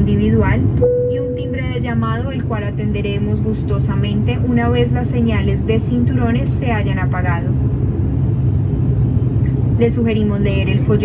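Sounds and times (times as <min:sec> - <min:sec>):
turboprop engines droning: 0:00.0 - 0:11.0.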